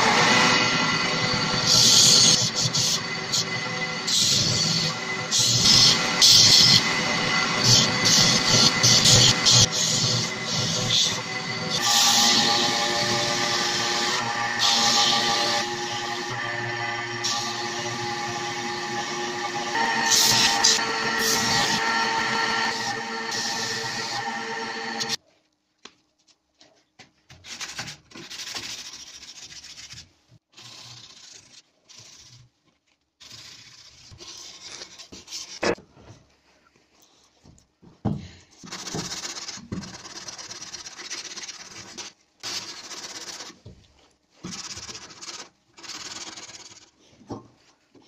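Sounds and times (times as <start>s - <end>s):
belt grinder grinding steel: 0.0s - 25.2s.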